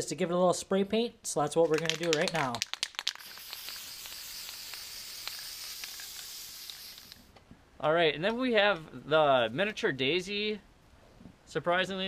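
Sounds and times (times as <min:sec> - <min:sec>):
spray paint can hissing: 0:01.6 - 0:07.3.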